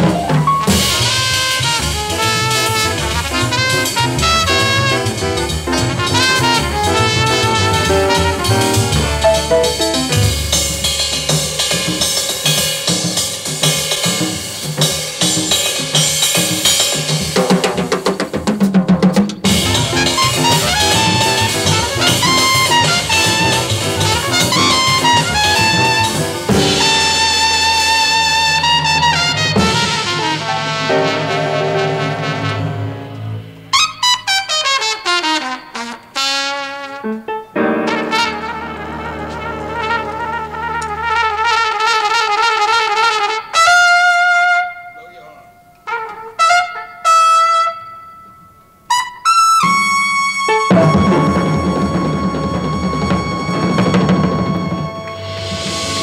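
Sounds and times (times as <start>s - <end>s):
trumpet playing fast runs: 0.0s - 10.7s, 19.5s - 45.1s, 45.9s - 47.9s, 48.9s - 56.0s
jazz band with drums: 0.0s - 47.8s, 48.9s - 56.0s.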